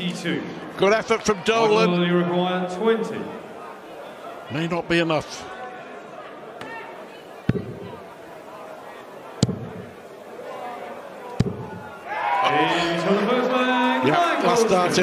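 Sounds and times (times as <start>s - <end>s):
voices: 0.0s - 15.0s.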